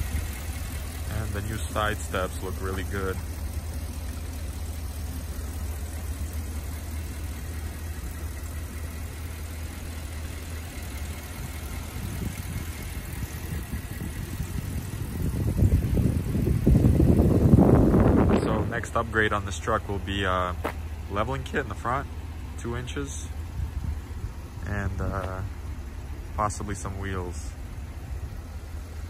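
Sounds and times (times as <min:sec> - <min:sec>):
truck engine idling: 0:00.0 - 0:29.0.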